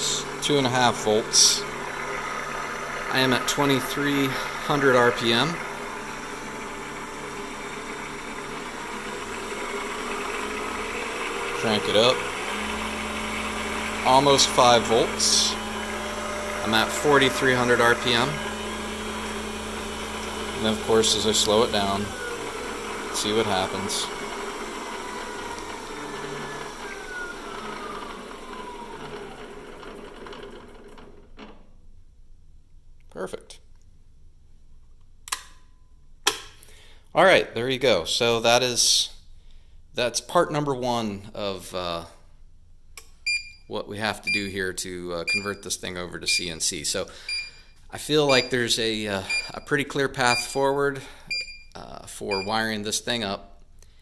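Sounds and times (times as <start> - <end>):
milling machine spindle running: 0.0 - 31.1.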